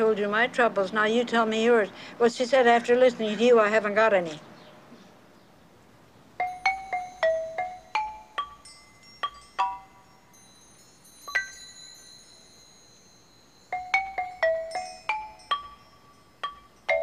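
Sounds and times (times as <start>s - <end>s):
xylophone-like mallet notes: 6.4s - 17.0s.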